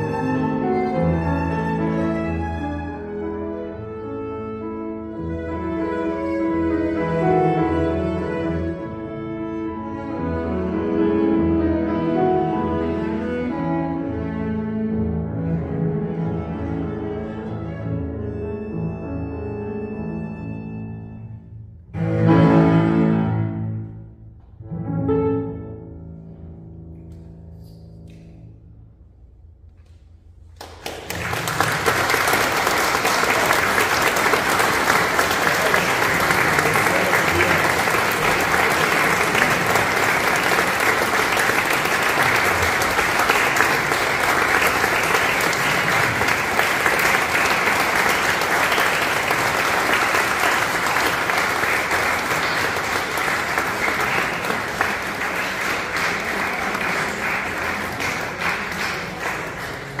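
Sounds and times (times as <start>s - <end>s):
audience applauding: 30.6s - 60.0s.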